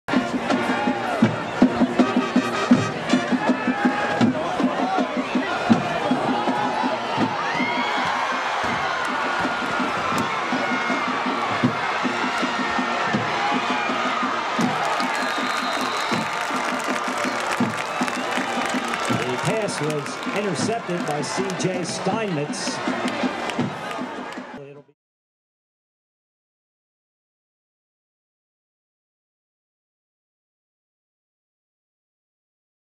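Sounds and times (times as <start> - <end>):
rapid rhythmic drum beating: 0.1 - 24.6
crowd cheering and shouting: 0.1 - 24.7.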